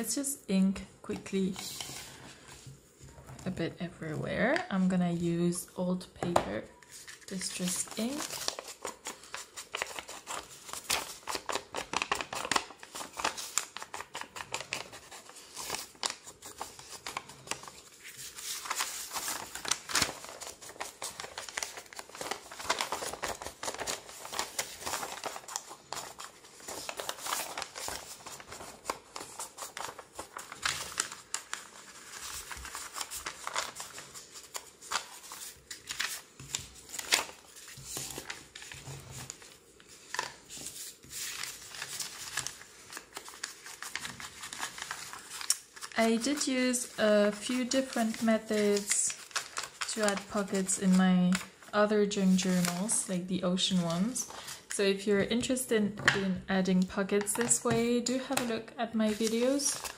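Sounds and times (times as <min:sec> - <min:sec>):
paper rustling: 0:01.5 - 0:03.5, 0:06.8 - 0:54.8, 0:57.0 - 0:59.9.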